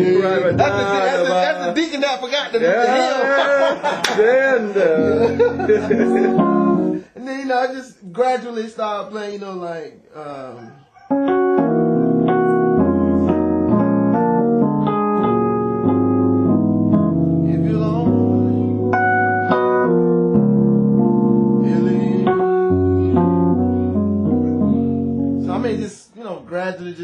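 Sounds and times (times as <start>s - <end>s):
piano playing gospel chords: 0.0s - 7.2s, 11.1s - 26.0s.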